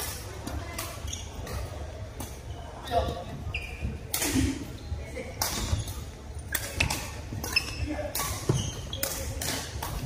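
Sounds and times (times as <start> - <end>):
rackets striking shuttlecocks: 5.3 - 10.0.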